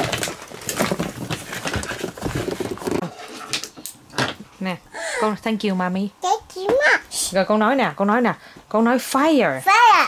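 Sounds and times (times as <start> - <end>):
hard objects knocking and clattering: 0.0 - 4.5.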